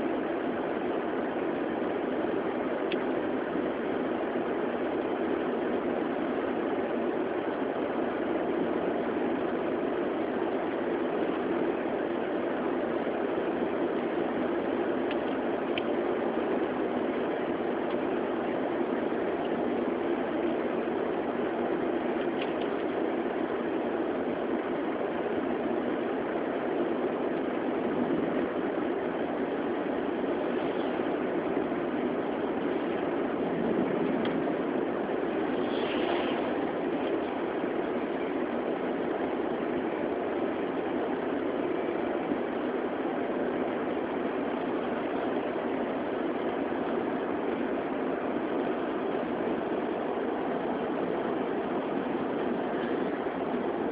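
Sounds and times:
car engine and tyre noise: 0.0s - 53.9s.

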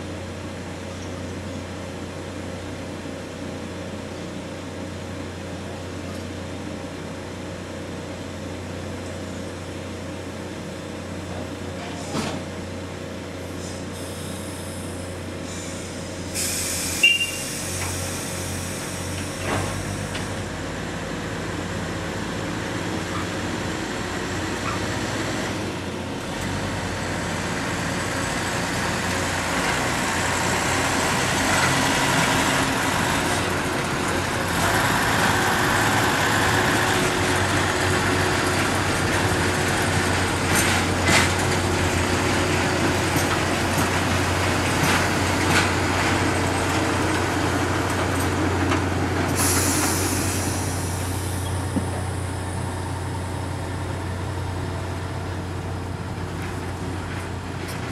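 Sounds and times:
low engine hum: 17.7s - 57.9s.

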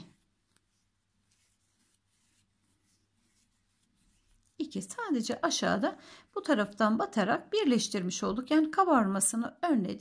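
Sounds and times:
soft rustles of crochet yarn: 0.0s - 7.0s.

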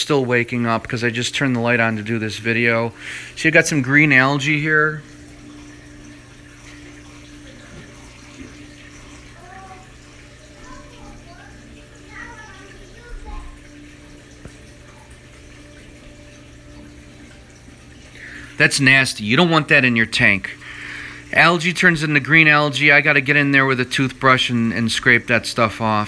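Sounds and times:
aquarium pump hum: 0.0s - 26.0s
running water: 0.0s - 26.0s.

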